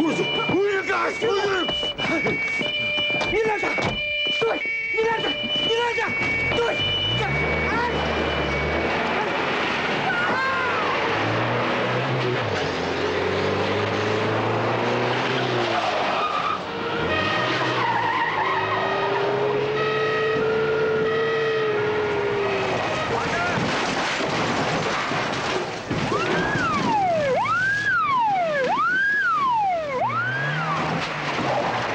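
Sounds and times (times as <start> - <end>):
held high tones: 0.0 - 9.4
tyres squealing: 0.0 - 11.5, 15.2 - 24.1, 24.9 - 31.9
car engines revving: 4.7 - 31.9.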